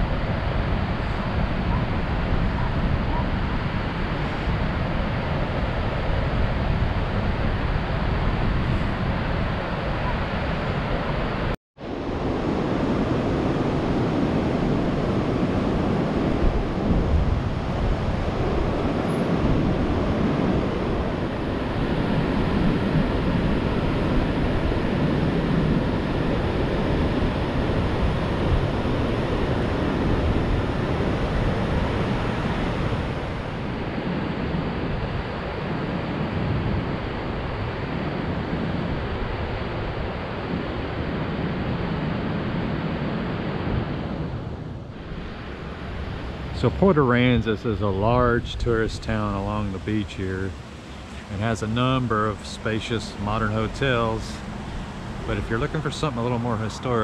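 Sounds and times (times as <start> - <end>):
surf washing up a beach: 0.0 - 57.0
wind buffeting microphone: 0.0 - 57.0.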